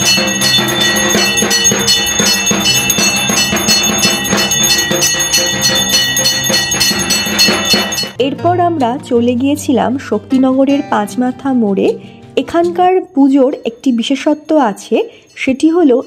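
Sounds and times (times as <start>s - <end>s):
hand bell ringing rapidly: 0.0s - 8.2s.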